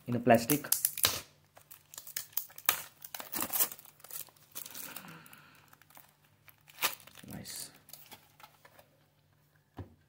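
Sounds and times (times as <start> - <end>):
plastic wrapping crinkling: 0.4 - 8.8.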